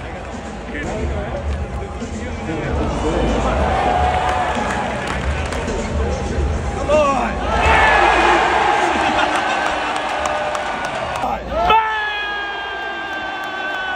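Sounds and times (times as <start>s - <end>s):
crowd cheering and whooping: 7.5s - 13.9s.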